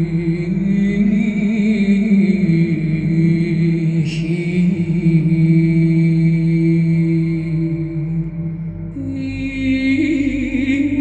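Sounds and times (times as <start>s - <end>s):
low drone chant: 0.0s - 11.0s.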